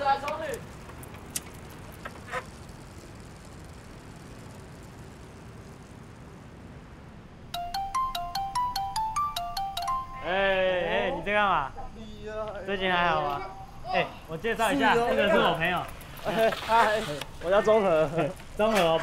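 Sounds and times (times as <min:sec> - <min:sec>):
outdoor background noise: 0:00.0 - 0:19.0
electronic beeping melody: 0:07.6 - 0:10.5.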